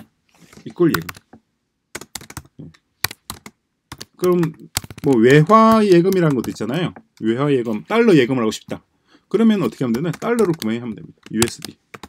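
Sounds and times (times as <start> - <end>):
computer keyboard typing: 0.8 - 7.3, 9.4 - 12.0.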